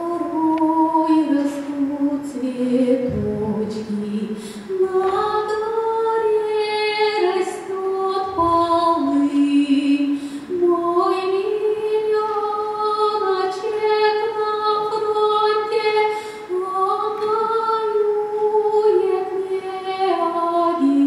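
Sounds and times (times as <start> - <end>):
woman singing unaccompanied: 0.0 - 21.0.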